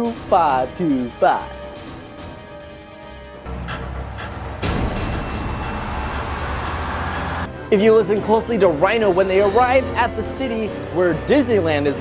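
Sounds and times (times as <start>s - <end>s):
film music: 0.0s - 12.0s
vehicle rumble: 3.4s - 7.6s
traffic noise: 3.5s - 7.6s.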